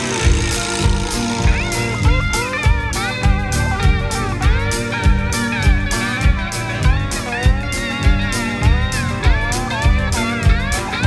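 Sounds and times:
bass guitar: 0.0s - 11.0s
drums: 0.0s - 11.0s
electric guitar lead: 0.0s - 11.0s.

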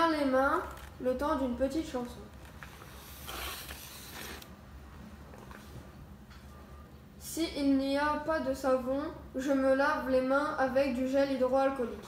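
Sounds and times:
paper card sliding out of frame: 2.6s - 4.5s.

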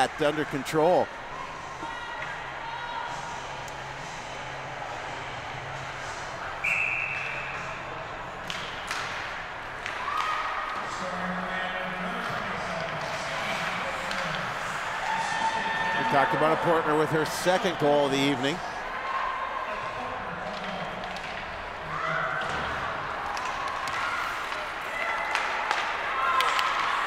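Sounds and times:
shrill whistle: 6.6s - 7.6s
murmur of voices: 9.4s - 27.0s.

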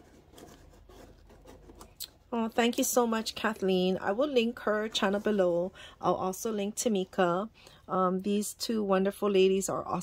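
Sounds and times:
paper box rustling: 0.0s - 2.0s.

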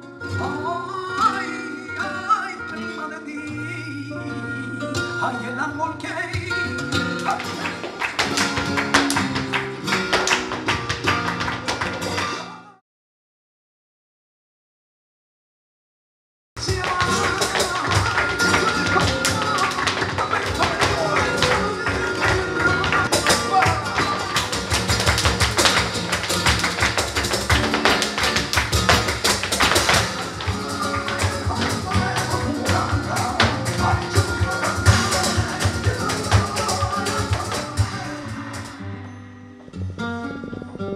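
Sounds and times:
flamenco guitar playing: 0.0s - 12.8s, 16.6s - 40.9s
cajon: 6.4s - 12.6s, 16.6s - 38.8s
dancer's feet striking stage floor: 7.0s - 12.4s, 16.6s - 38.7s
hand-clapping: 7.0s - 12.6s, 16.6s - 38.8s.

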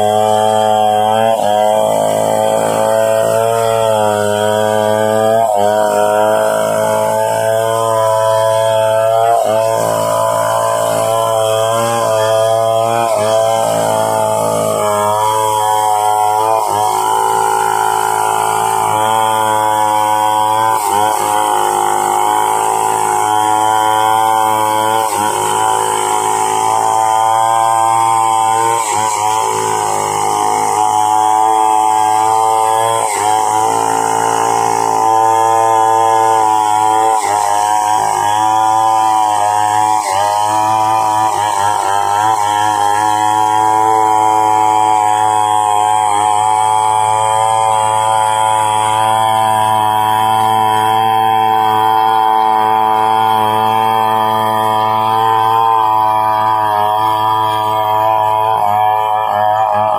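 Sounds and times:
chainsaw cutting timber: 0.0s - 59.9s.

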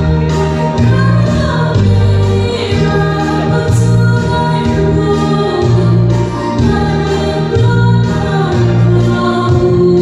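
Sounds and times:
sustained bass notes: 0.0s - 10.0s
woman singing gospel song: 0.7s - 10.0s.

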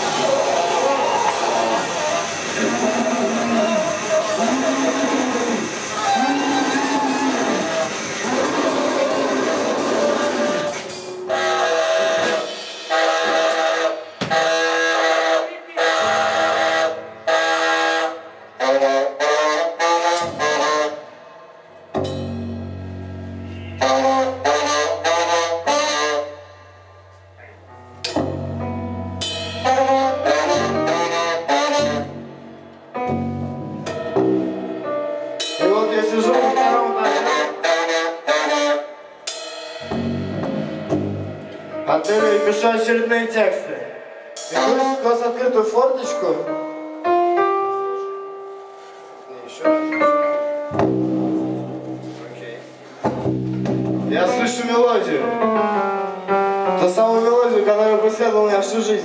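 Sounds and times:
live band with saxophone: 0.0s - 21.2s, 23.3s - 27.3s, 29.3s - 33.3s, 34.8s - 39.3s.

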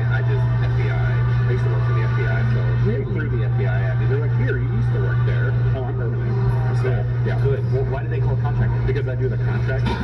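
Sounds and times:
loud low hum: 0.0s - 10.0s
muffled man talking: 0.0s - 10.0s.

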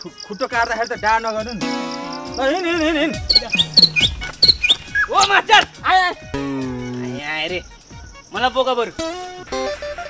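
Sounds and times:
background music: 0.0s - 10.0s
short high chirps: 3.3s - 5.2s.

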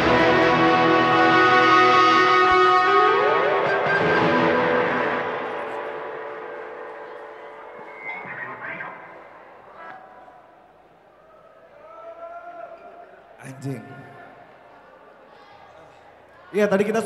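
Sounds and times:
electric guitar chord ringing: 0.0s - 8.1s
rising guitar slide: 0.0s - 8.5s.

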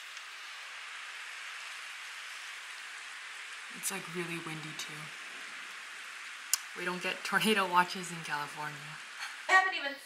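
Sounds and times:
heavy rain pouring: 0.0s - 9.9s.

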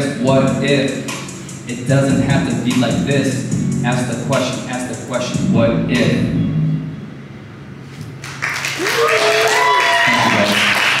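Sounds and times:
audience applauding and cheering: 8.2s - 11.0s
person whooping: 8.8s - 10.6s.

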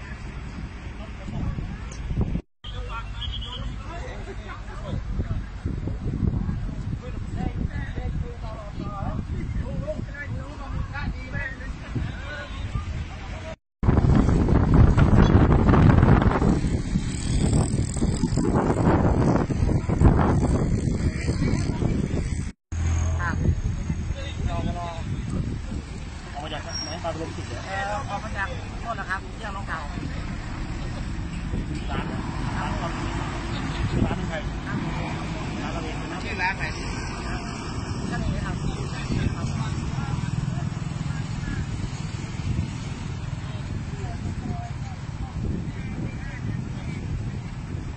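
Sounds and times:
wind buffeting microphone: 0.0s - 2.4s, 3.8s - 47.9s
traffic rumbling: 0.0s - 47.9s
truck going past: 30.0s - 43.9s.

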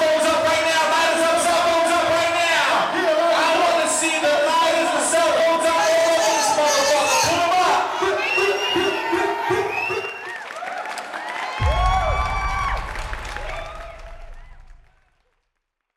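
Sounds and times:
crowd cheering: 2.8s - 15.4s
deep bass hit: 11.6s - 15.2s.

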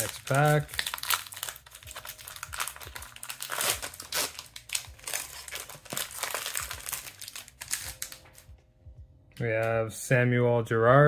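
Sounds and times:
foil wrapper crinkling: 0.0s - 8.5s
wrapper tearing: 0.0s - 8.5s.

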